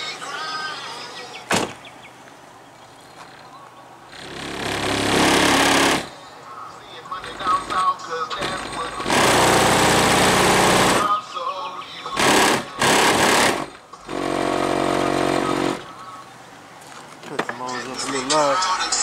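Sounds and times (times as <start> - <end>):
rap vocals: 0.0 - 1.5, 6.5 - 9.2, 11.0 - 13.0, 17.5 - 19.0
loud hip-hop from car stereo: 0.0 - 1.8, 17.6 - 19.0.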